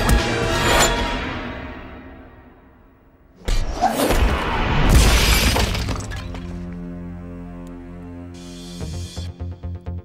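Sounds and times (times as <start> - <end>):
loud crash with shattering: 4.8 - 6.4.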